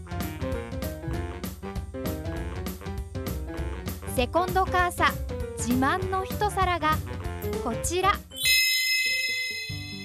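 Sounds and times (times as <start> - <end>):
light background music: 0.0 - 10.0
bright chime: 8.3 - 10.0.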